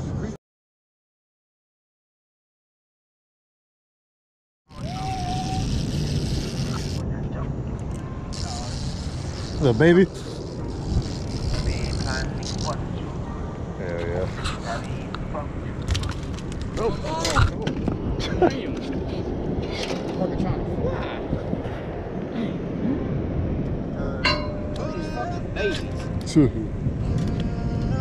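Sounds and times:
people talking indistinctly: 0:08.3 - 0:15.9.

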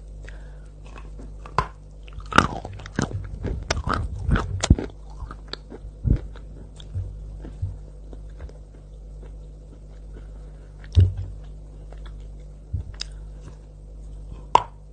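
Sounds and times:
crunching chews of chalk: 0:00.3 - 0:14.3.

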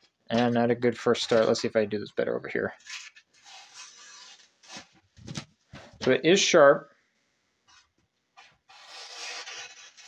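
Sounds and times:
knife slicing paper: 0:02.8 - 0:05.0, 0:08.7 - 0:10.0.

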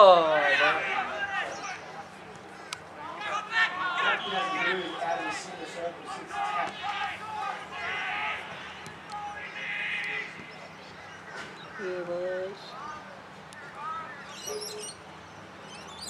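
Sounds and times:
voices calling and shouting: 0:00.0 - 0:16.0.

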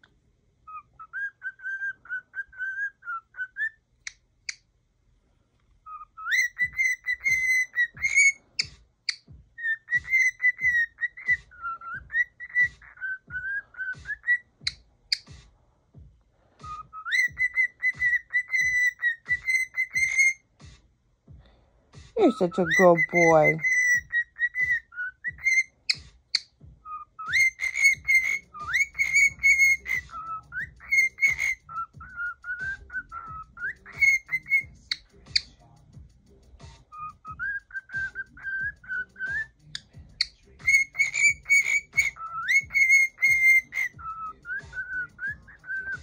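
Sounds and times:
cockatiel whistling song: 0:00.6 - 0:04.6, 0:05.8 - 0:15.5, 0:16.6 - 0:20.8, 0:22.2 - 0:46.0.

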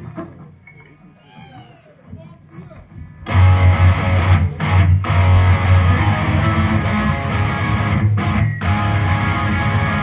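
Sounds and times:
stage noise: 0:00.0 - 0:10.0.

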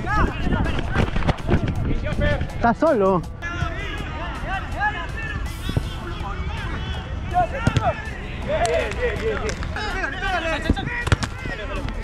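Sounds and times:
players calling and shouting: 0:00.0 - 0:12.0
ball being kicked: 0:07.6 - 0:08.0, 0:11.0 - 0:11.5.

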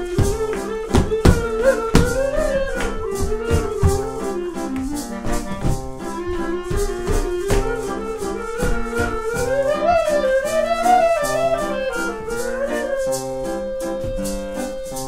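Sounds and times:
acoustic band playing: 0:00.0 - 0:15.0.

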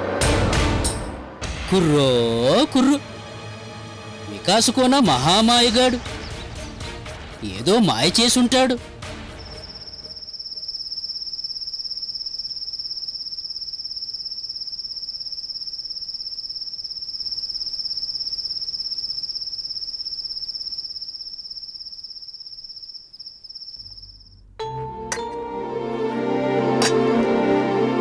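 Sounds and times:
cricket trilling: 0:09.3 - 0:24.5.

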